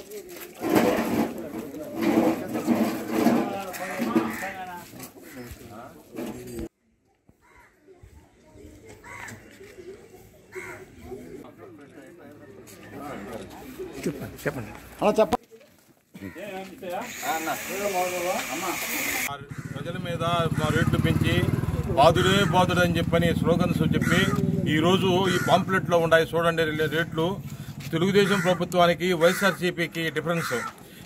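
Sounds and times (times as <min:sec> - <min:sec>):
men talking: 0:00.7 - 0:06.7, 0:10.9 - 0:15.4, 0:16.1 - 0:30.8.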